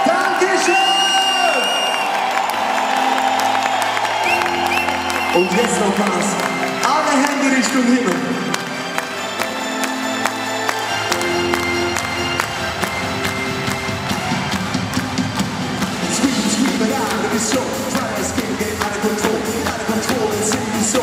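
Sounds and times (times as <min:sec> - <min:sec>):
crowd cheering: 0:00.0 - 0:21.0
live band playing pop: 0:09.0 - 0:21.0.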